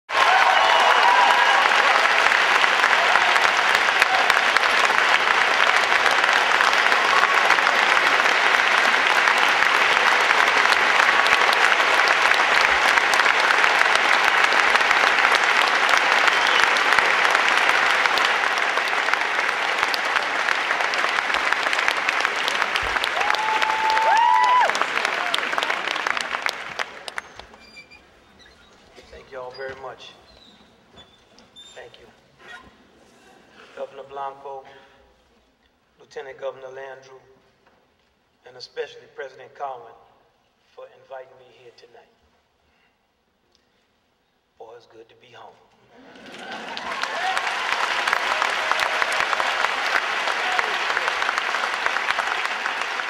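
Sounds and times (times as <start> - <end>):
cheering calls: 0.1 - 27.4, 46.0 - 53.0
audience applauding: 0.1 - 28.0, 45.9 - 53.0.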